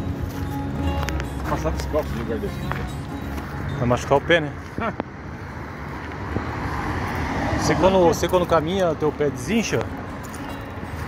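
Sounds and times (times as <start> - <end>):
car passing: 0.0 - 11.0.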